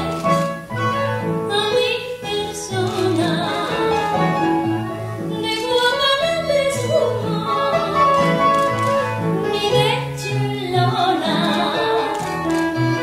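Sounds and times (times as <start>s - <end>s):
instrumental accompaniment: 0.0s - 13.0s
woman singing with vibrato: 1.5s - 4.3s, 5.3s - 8.1s, 9.4s - 13.0s.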